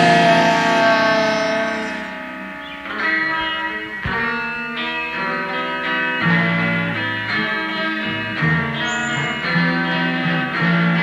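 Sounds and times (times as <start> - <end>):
electric guitar chord ringing: 0.0 - 11.0.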